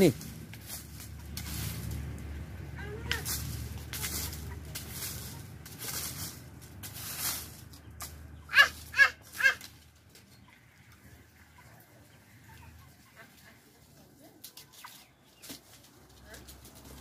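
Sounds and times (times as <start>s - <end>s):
dry leaves crunching underfoot: 0.0s - 17.0s.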